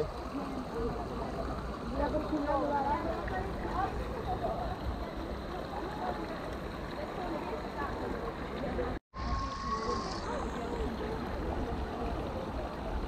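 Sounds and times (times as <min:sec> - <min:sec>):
water running down slide: 0:00.0 - 0:13.0.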